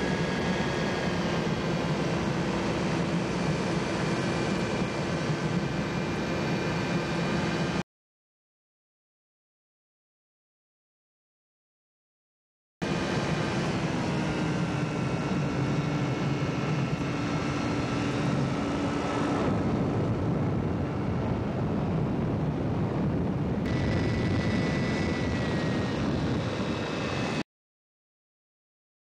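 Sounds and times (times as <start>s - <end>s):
ultralight engine and propeller: 0.0s - 7.8s, 12.8s - 27.5s.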